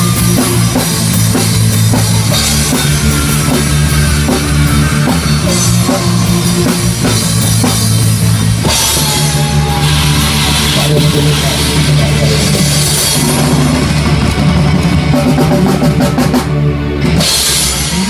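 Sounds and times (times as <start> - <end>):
drum kit steady beat: 0.0 - 18.0
keyboard and guitar chords: 0.0 - 18.0.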